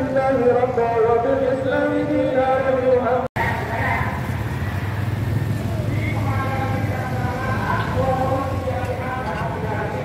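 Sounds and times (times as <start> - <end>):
car engines running: 3.4 - 10.0
motorcycle engines running: 3.4 - 10.0.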